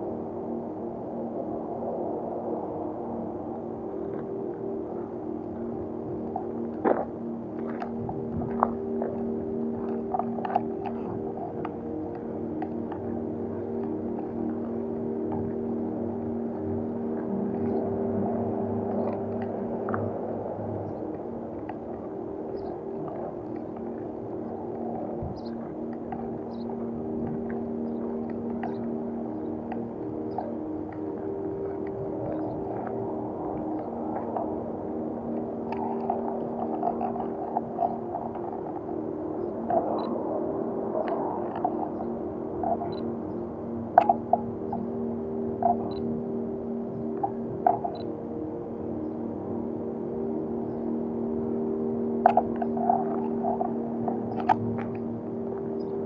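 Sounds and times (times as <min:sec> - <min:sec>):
ambient droning music: 0:00.0 - 0:56.0.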